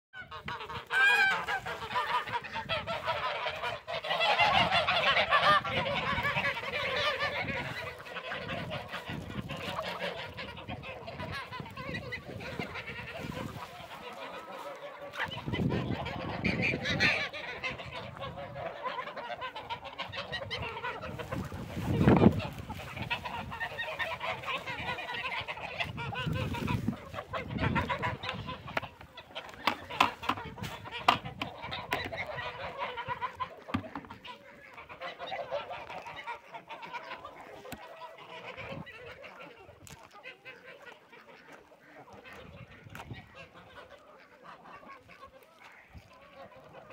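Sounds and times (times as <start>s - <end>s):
ducks honking: 0.2s - 46.9s
hens clucking: 0.2s - 46.9s.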